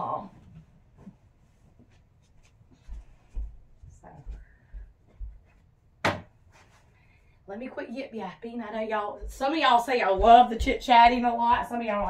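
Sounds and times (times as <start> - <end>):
footsteps on floor: 0.4 - 5.8, 9.2 - 12.0
sharp knock: 6.0 - 6.3.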